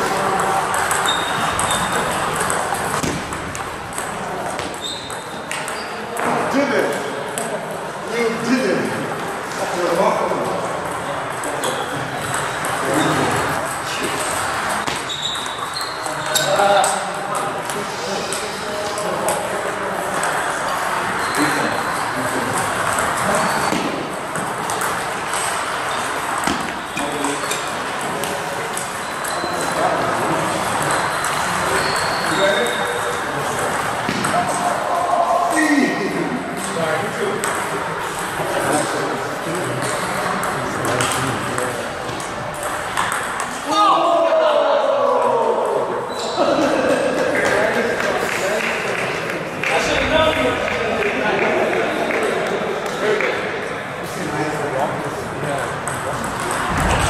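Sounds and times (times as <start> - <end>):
table tennis balls clicking: 0.0 - 7.7, 10.6 - 34.8, 36.5 - 43.6, 55.7 - 57.0
background voices in a hall: 0.0 - 57.0.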